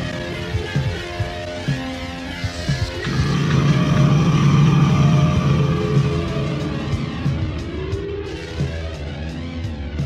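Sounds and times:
layered drone: 2.3s - 10.0s
distorted wall of noise: 2.8s - 8.8s.

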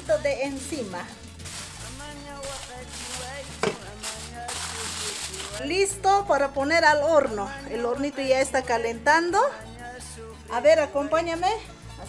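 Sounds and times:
aluminium foil crinkling: 0.0s - 5.7s.

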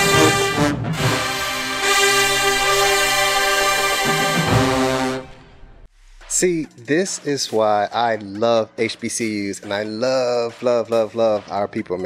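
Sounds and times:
marching band brass chord: 0.0s - 5.9s.

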